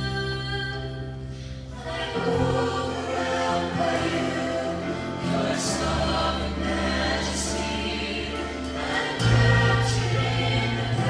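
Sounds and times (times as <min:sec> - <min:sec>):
young voices singing worship song: 0:00.0 - 0:11.0.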